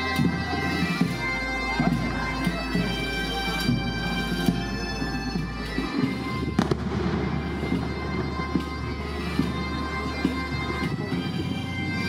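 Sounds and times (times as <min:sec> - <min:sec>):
bagpipe music: 0:00.0 - 0:12.0
firework bangs: 0:06.5 - 0:07.9.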